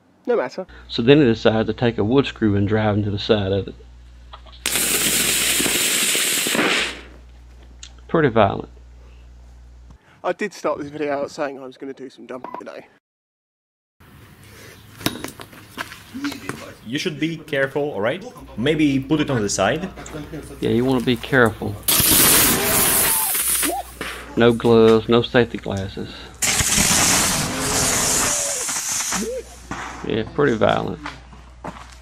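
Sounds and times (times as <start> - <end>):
battery venting gas hiss: 4.0 - 7.2, 20.2 - 24.7, 26.2 - 30.1.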